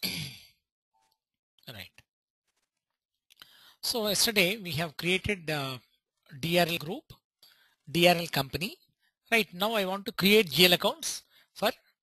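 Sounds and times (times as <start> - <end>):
man speaking: 1.6 - 2.1, 3.8 - 7.2, 7.8 - 11.9.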